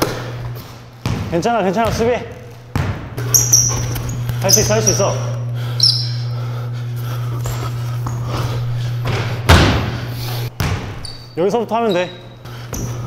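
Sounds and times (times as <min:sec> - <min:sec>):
steady low hum: 0:00.0 - 0:11.0, 0:12.0 - 0:13.0
basketball thump: 0:01.0 - 0:02.1, 0:02.7 - 0:03.2, 0:09.0 - 0:10.0, 0:10.6 - 0:11.0
shoe squeak on court: 0:03.2 - 0:05.1, 0:05.8 - 0:06.2, 0:11.0 - 0:13.0.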